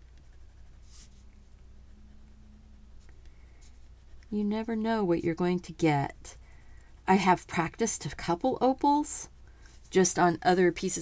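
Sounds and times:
colored pencil scratching on card: 0.0 - 2.4, 3.0 - 9.0.

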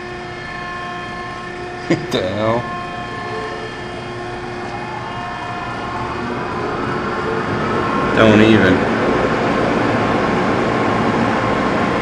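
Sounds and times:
car wash motors humming: 0.0 - 12.0
faint rising whine: 0.0 - 12.0.

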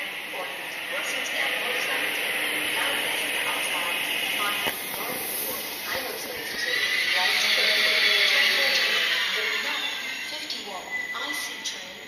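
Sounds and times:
train rolling slowly: 0.0 - 12.0
high steady squeal of running gear: 0.1 - 12.0.

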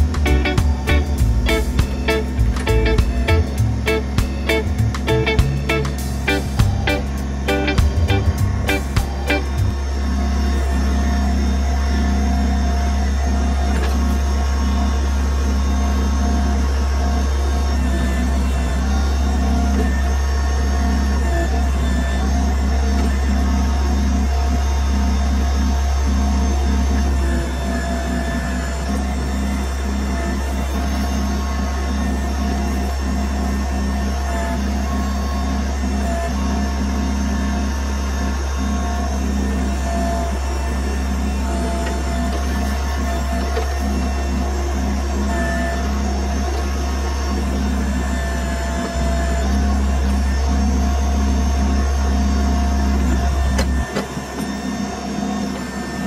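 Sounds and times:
electronic music with low drone: 0.0 - 11.0.

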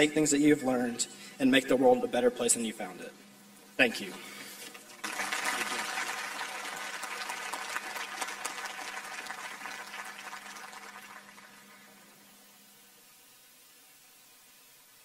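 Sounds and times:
faint steady hum: 0.0 - 15.0
crowd applause: 5.0 - 12.2.

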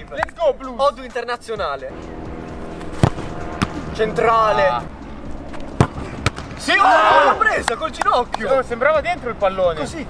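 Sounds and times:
football kicked hard: 3.0 - 3.8, 5.8 - 6.6.

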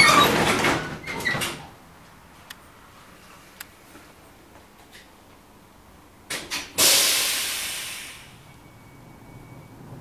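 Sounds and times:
hiss of released air: 6.8 - 8.5
tram running rumble: 8.4 - 10.0.

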